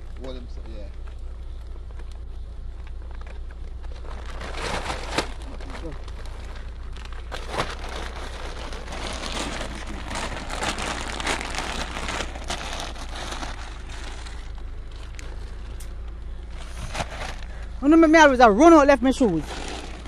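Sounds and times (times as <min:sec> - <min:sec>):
low rumble: 0:00.0 - 0:20.0
rustling and crackling: 0:00.0 - 0:20.0.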